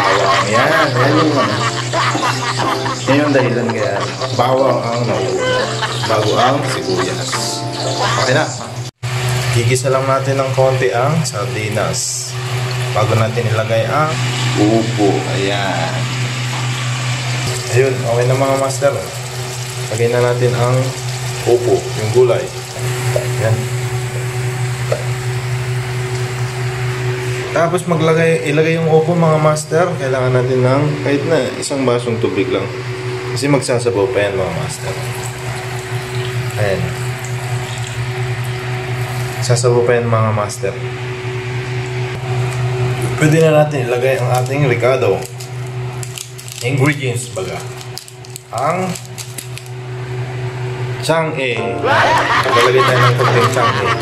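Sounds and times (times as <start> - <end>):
high whine: 0.0 - 43.9, 49.7 - 54.0
low mechanical motor hum: 0.0 - 54.0.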